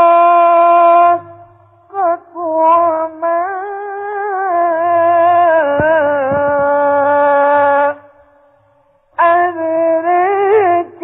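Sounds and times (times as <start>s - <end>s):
person reciting melodically: 0.0s - 8.5s, 9.2s - 11.0s.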